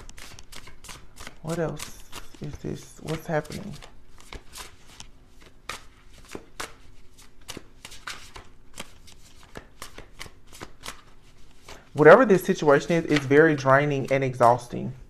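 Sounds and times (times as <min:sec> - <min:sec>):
cards being shuffled: 0:00.0 - 0:14.7.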